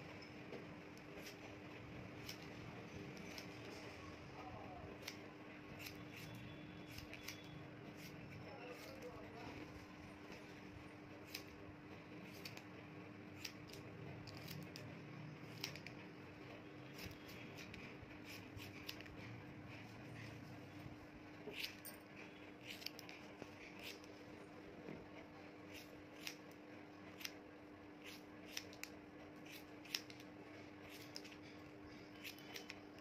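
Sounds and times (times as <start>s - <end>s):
scissors snipping hair: 1.0s - 1.5s, 2.1s - 3.7s, 5.0s - 9.2s, 11.2s - 11.6s, 12.2s - 12.7s, 13.4s - 16.0s, 16.9s - 19.2s, 21.5s - 22.0s, 22.6s - 24.2s, 25.7s - 27.4s, 28.0s - 31.4s, 32.0s - 33.0s.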